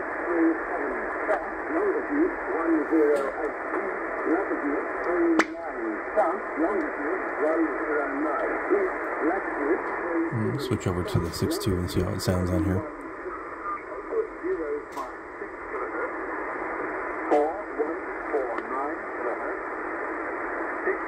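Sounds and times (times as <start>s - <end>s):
radio static: 0.1s - 21.0s
voice over radio speaker: 0.3s - 13.0s.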